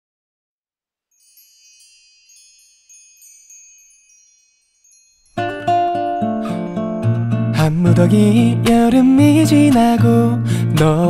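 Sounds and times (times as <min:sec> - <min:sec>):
soft high chimes ringing: 0:01.1 - 0:07.4.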